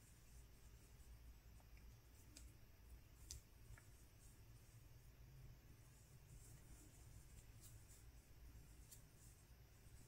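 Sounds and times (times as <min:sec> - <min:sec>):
faint crochet hook clicks: 0:01.6 - 0:02.6, 0:03.2 - 0:04.0.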